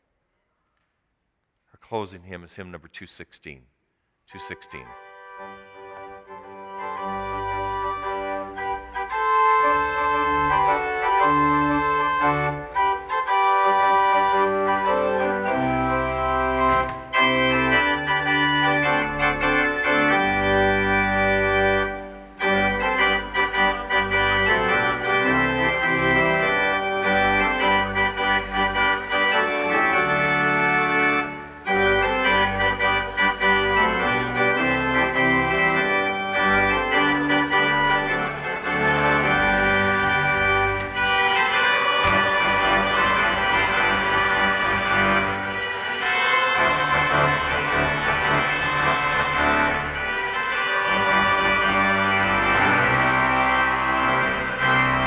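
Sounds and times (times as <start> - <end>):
church organ playing hymn: 1.8 - 3.6, 4.3 - 55.0.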